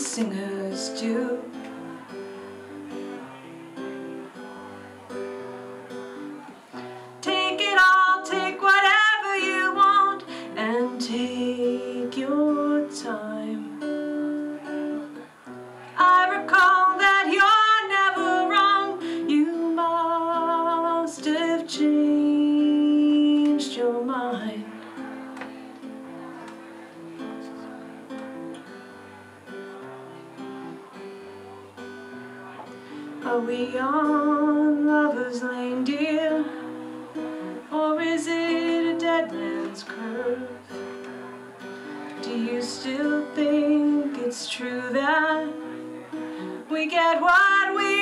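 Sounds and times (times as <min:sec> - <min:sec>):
woman singing with vibrato: 0:00.0 - 0:01.6, 0:07.2 - 0:14.0, 0:16.0 - 0:24.7, 0:33.2 - 0:40.7, 0:42.2 - 0:45.8, 0:46.4 - 0:48.0
acoustic guitar playing: 0:00.0 - 0:48.0.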